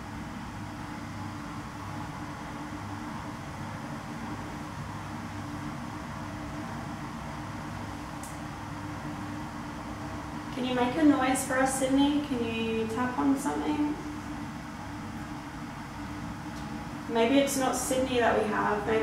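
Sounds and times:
low hum and hiss: 0.0 - 19.0.

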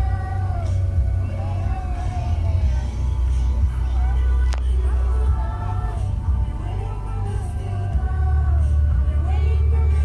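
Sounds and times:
music with singing: 0.0 - 10.0
steady low rumble: 0.0 - 10.0.

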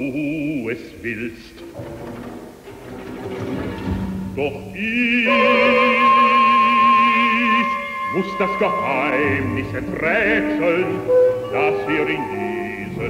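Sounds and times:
orchestra playing: 1.6 - 13.0
singer with vibrato: 4.4 - 13.0.

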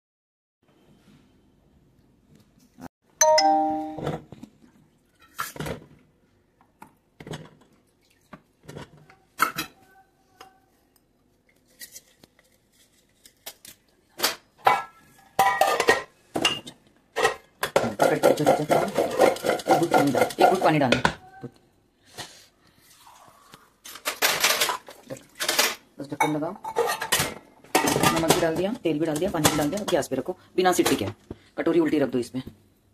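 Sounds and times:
two-note ding-dong chime: 3.2 - 4.1
metal pot and lid clanking: 14.6 - 20.8.

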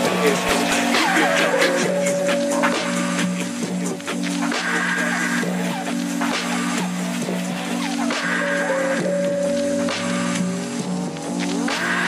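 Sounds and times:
phonk music with bass: 0.0 - 12.0.

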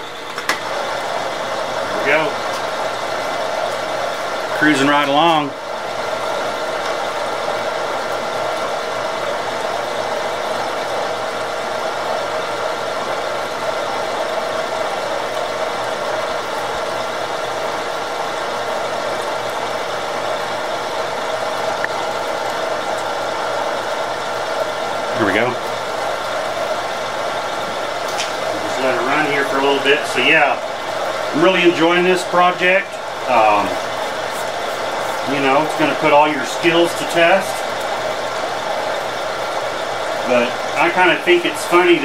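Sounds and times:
milling machine cutting metal: 0.0 - 42.0.

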